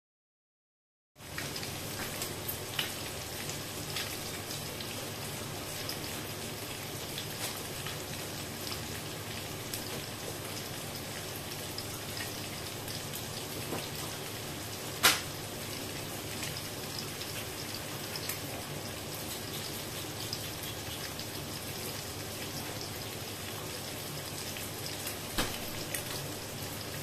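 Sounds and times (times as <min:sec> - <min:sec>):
food sizzling in oil: 0:01.2 - 0:27.0
small crackles and pops: 0:01.3 - 0:04.6, 0:07.2 - 0:08.0, 0:15.0 - 0:15.4, 0:19.1 - 0:21.4.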